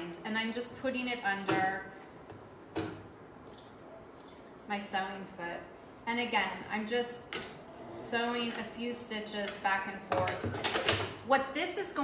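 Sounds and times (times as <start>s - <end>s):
faint steady background noise: 0.0s - 12.0s.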